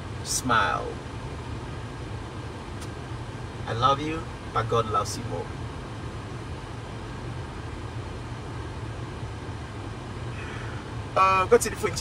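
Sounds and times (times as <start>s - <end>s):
car interior rumble and hiss: 0.0s - 12.0s.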